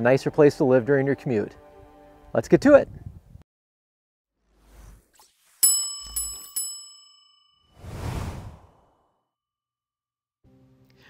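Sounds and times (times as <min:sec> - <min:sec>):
metal triangle ringing: 0:05.6 - 0:07.7
burst of rushing noise: 0:07.8 - 0:08.8.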